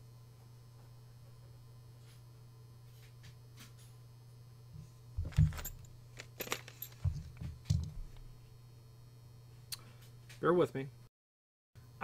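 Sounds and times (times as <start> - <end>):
keys jangling and clinking: 5.2 - 7.9.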